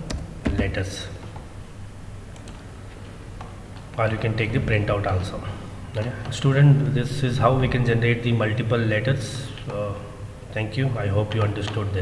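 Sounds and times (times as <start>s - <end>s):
steady low hum: 0.0s - 12.0s
computer mouse clicks: 2.3s - 2.6s.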